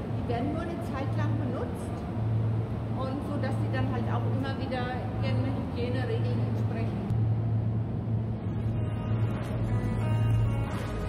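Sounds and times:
low droning hum: 0:00.0 - 0:11.0.

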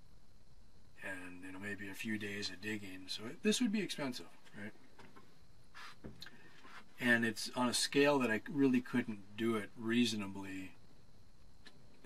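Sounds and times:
short faint hiss: 0:05.0 - 0:07.0.

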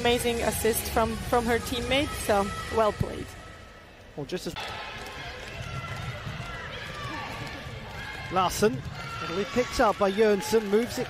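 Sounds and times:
murmur of crowd noise: 0:00.0 - 0:11.0.

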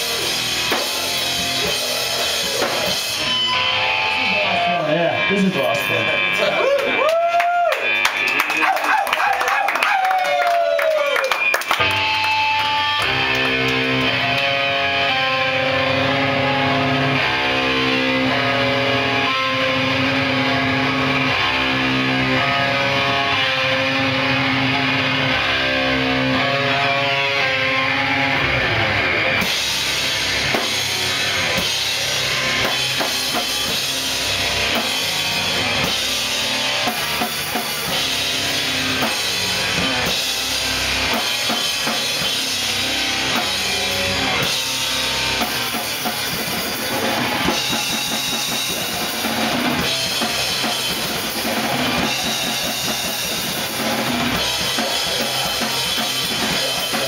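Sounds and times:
drums and cymbals: 0:00.0 - 0:04.4, 0:15.1 - 0:57.0
electric guitar and bass riff: 0:00.0 - 0:57.0.

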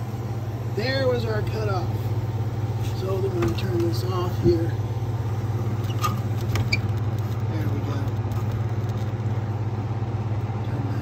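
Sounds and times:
compressor humming: 0:00.0 - 0:11.0.

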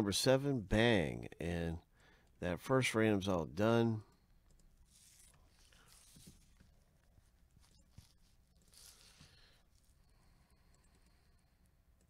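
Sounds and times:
soft rustles: 0:04.8 - 0:10.1.

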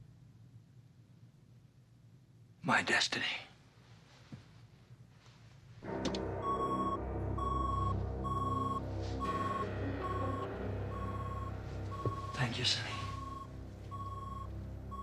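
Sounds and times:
low rumbling drone: 0:05.8 - 0:15.0
high electronic beeps: 0:06.4 - 0:15.0.

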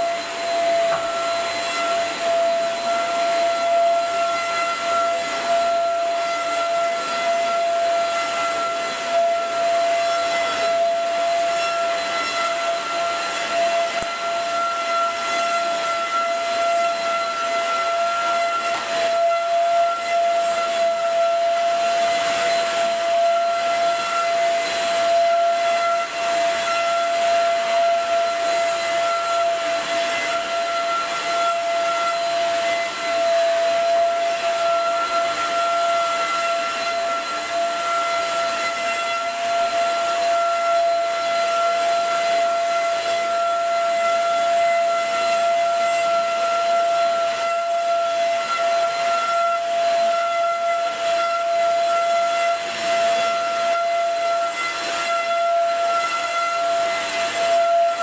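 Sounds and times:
vacuum cleaner on carpet: 0:00.0 - 0:58.0.

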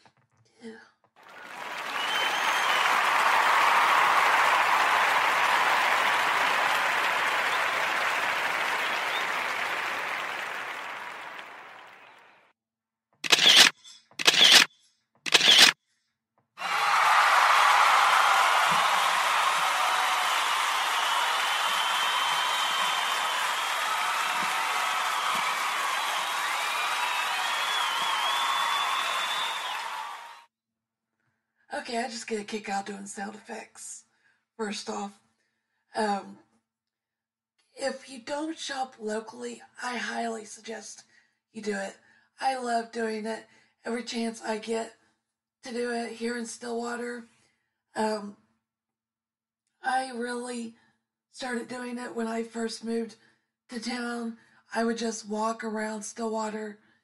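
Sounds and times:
crowd noise: 0:01.2 - 0:12.5, 0:16.6 - 0:30.4
short sharp bursts: 0:13.2 - 0:14.7, 0:15.3 - 0:15.8.

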